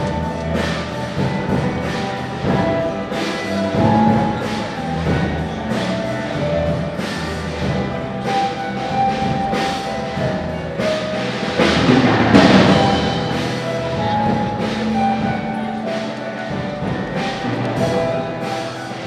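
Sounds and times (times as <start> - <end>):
clashing percussion: 0.0 - 19.0
drum strokes: 0.0 - 19.0
long held melodic notes: 0.0 - 19.0.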